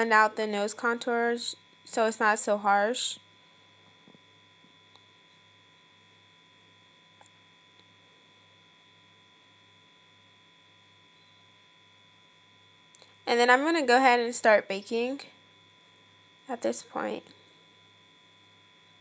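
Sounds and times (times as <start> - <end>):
electrical hum and whine: 0.0 - 19.0.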